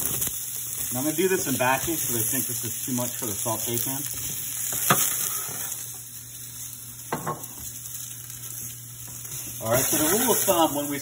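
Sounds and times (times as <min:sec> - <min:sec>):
vegetables sizzling in oil: 0:00.0 - 0:11.0
pan knocking on stovetop: 0:07.1 - 0:07.4.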